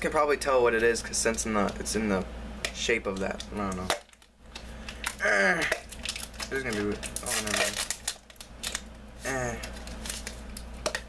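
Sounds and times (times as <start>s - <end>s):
hands opening a package: 3.9s - 11.0s.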